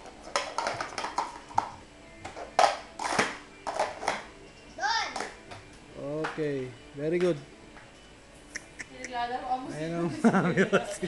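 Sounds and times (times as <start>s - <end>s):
plastic cups clacking: 0.0s - 4.3s.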